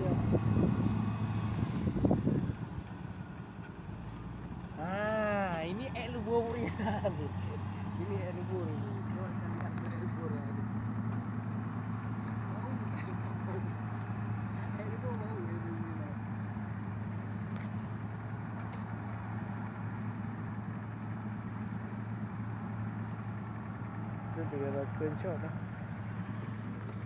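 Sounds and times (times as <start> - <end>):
heavy diesel engines humming: 0.0 - 27.0
voices talking: 4.7 - 17.2, 24.3 - 26.0.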